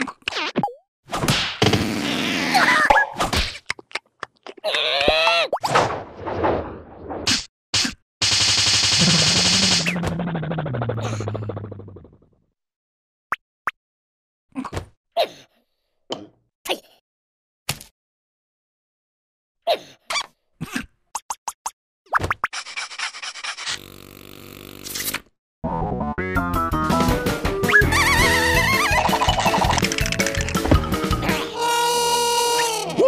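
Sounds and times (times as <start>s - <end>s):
comic sound effects: 9.0s - 10.4s, 27.6s - 30.0s
cartoon character vocal noises: 9.0s - 11.7s, 31.2s - 33.0s.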